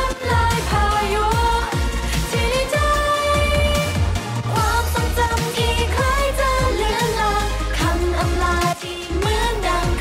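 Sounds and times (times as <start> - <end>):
sustained bass: 0.0 - 10.0
woman singing pop song: 0.0 - 10.0.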